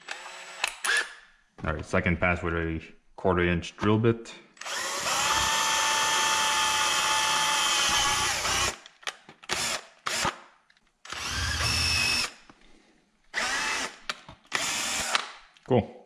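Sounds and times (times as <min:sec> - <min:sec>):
cordless drill boring through foam: 0:00.0 - 0:01.1, 0:04.6 - 0:08.8, 0:09.5 - 0:10.4, 0:11.1 - 0:12.4, 0:13.3 - 0:15.3
drill trigger blips: 0:04.6 - 0:08.8, 0:11.1 - 0:12.4, 0:13.4 - 0:15.3.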